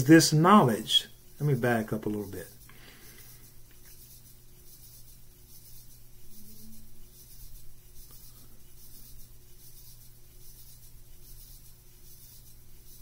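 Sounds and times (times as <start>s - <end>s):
faint rustling and rubbing: 0.0s - 13.0s
steady low hum: 0.0s - 13.0s.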